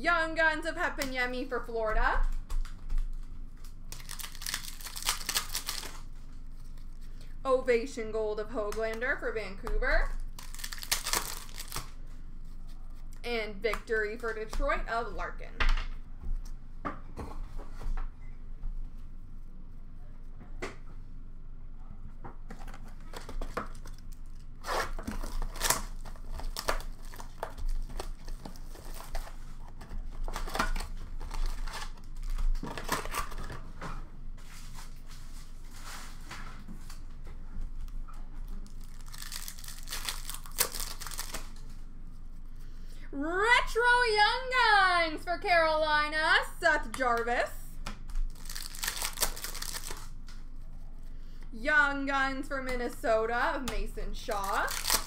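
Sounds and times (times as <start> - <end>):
wrappers crinkling: 2.3 - 7.4, 10.0 - 13.2, 22.7 - 33.6, 38.5 - 41.7, 48.0 - 50.2, 54.2 - 55.0
foil pack ripping: 3.6 - 6.1, 10.2 - 12.0, 23.0 - 33.6, 38.6 - 41.6, 48.1 - 50.2, 54.3 - 55.0.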